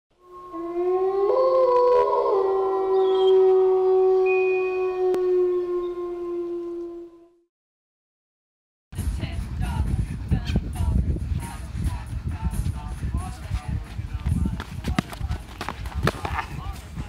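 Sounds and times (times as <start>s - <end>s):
wolf howling: 0.2s - 7.4s.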